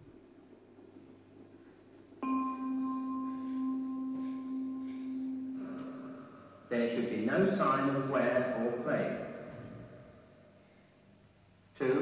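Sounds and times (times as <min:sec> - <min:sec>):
faint higher hum: 0:00.0 - 0:12.0
bell-like tone: 0:02.2 - 0:07.1.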